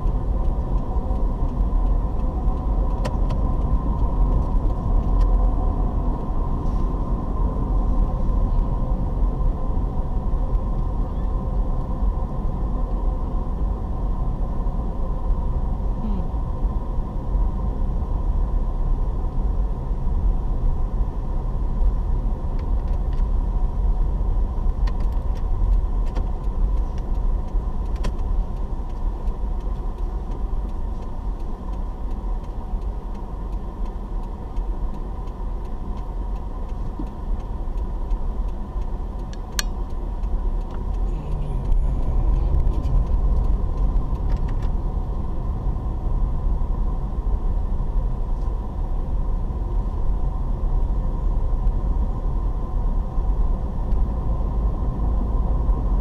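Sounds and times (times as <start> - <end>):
car engine and road rumble: 0.0 - 56.0.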